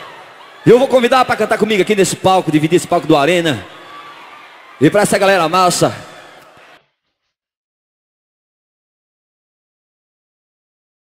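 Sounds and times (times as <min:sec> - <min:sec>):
faint live stage ambience: 0:00.0 - 0:07.3.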